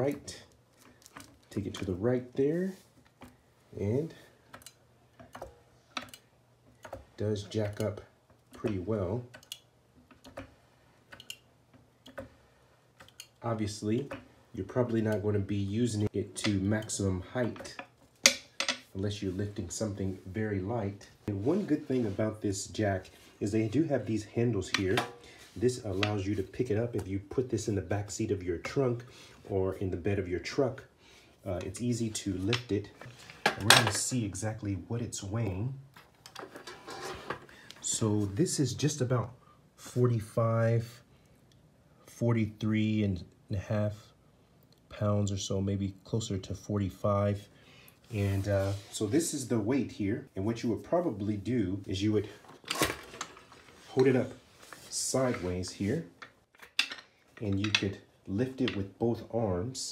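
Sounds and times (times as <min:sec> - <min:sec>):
light handling clicks and rustles: 0:00.0 - 0:29.5, 0:35.4 - 0:38.4, 0:51.5 - 0:59.3.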